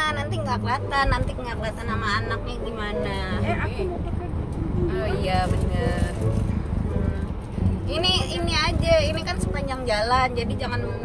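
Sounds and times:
vehicle cabin road and engine rumble: 0:00.0 - 0:11.0.

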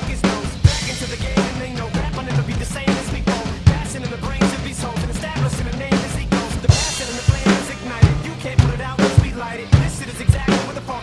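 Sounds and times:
backing music: 0:00.0 - 0:11.0
snare and cymbal hits: 0:05.9 - 0:10.8.

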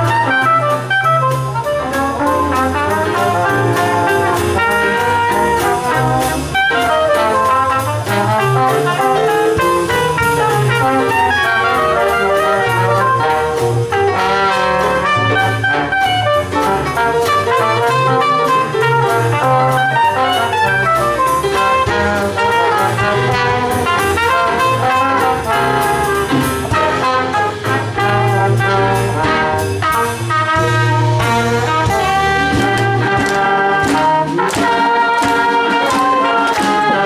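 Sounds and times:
traditional jazz band playing: 0:00.0 - 0:37.0
trombone: 0:00.0 - 0:37.0.

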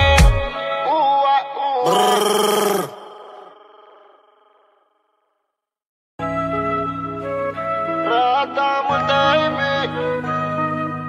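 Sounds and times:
singer holding long note: 0:01.9 - 0:03.6.

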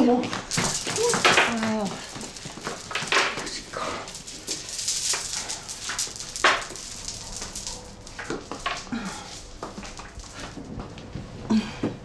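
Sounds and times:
woman gasping and moaning: 0:08.9 - 0:09.4, 0:11.5 - 0:12.0.

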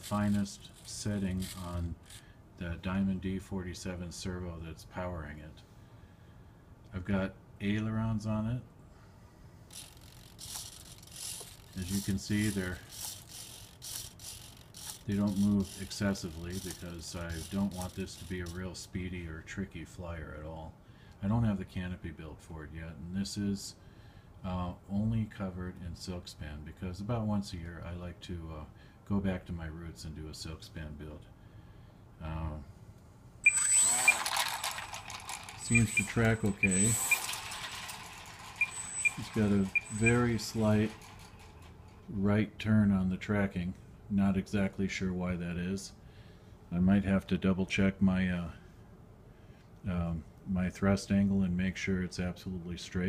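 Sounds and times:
micro servo whirring: 0:00.0 - 0:02.2, 0:09.7 - 0:18.6, 0:33.4 - 0:41.7
electric motor and propeller whine: 0:09.7 - 0:18.0, 0:33.5 - 0:41.6.

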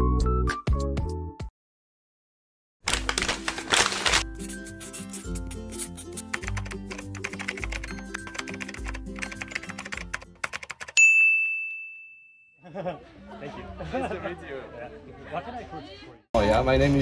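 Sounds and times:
light background music: 0:03.1 - 0:10.5
keyboard typing clicks: 0:06.4 - 0:11.0
bright bell ding: 0:11.0 - 0:12.6.

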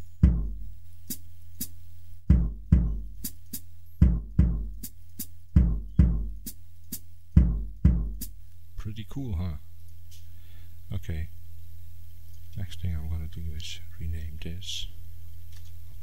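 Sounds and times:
hi-hat chicks: 0:00.0 - 0:08.4
deep kick drum hits: 0:00.2 - 0:00.6, 0:02.3 - 0:03.1, 0:04.0 - 0:04.8, 0:05.6 - 0:06.4, 0:07.4 - 0:08.2.

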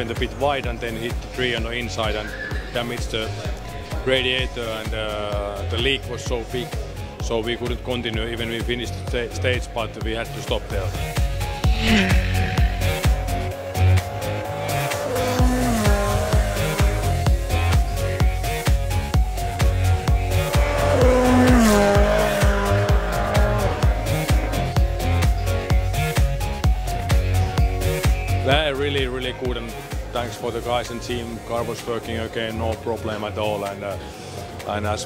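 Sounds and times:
background music with beat: 0:00.0 - 0:35.0
rally car engine revving: 0:11.2 - 0:18.7, 0:19.4 - 0:25.3.

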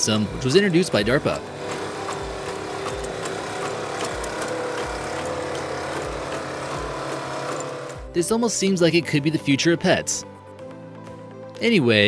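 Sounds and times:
mechanical hydraulic drone: 0:00.0 - 0:08.1.

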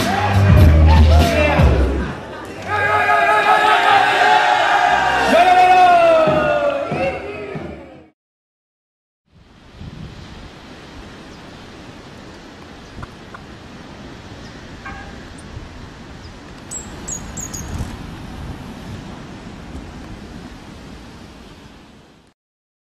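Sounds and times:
wind rush on microphone: 0:09.3 - 0:22.2
high bird chirps: 0:16.2 - 0:17.9.

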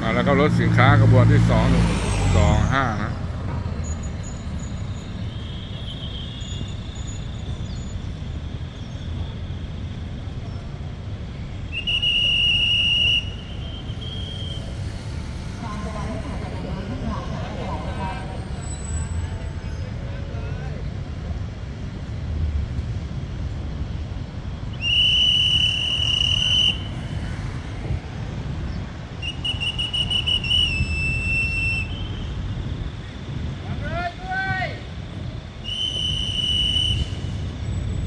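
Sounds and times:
diesel locomotive rumbling: 0:00.0 - 0:05.8, 0:10.0 - 0:38.0
high-pitched whistle blasts: 0:11.7 - 0:14.8, 0:24.7 - 0:27.1, 0:29.2 - 0:32.6, 0:35.6 - 0:37.8.

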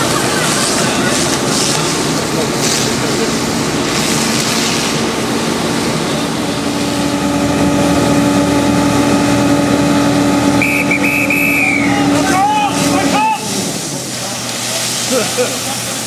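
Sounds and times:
water spray hiss: 0:00.0 - 0:06.2, 0:12.4 - 0:16.0
pump engine drone: 0:00.0 - 0:16.0.

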